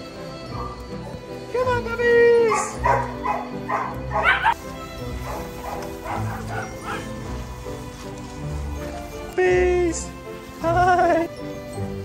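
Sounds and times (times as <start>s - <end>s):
background music: 0.0s - 12.0s
dogs barking: 0.5s - 1.3s, 2.4s - 7.3s.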